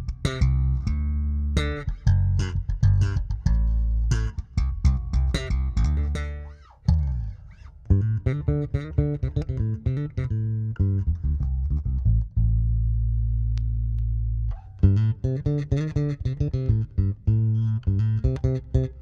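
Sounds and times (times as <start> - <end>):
electric bass riff: 0.0 - 19.0
bass note sliding down: 10.8 - 17.6.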